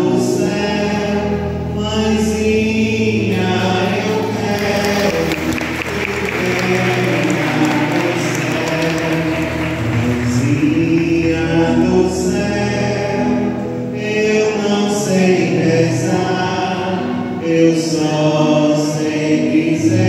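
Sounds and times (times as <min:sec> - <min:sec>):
congregation singing a hymn: 0:00.0 - 0:20.0
applause: 0:03.8 - 0:10.7.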